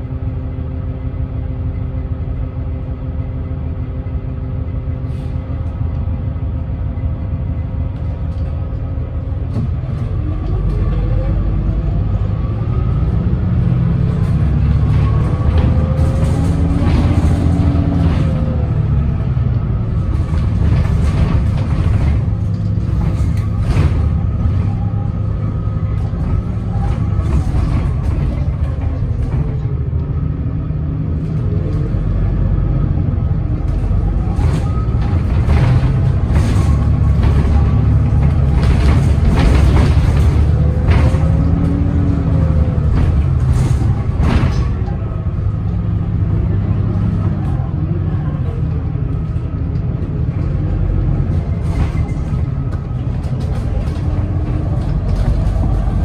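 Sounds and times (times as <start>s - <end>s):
bus engine rumble: 0.0s - 56.0s.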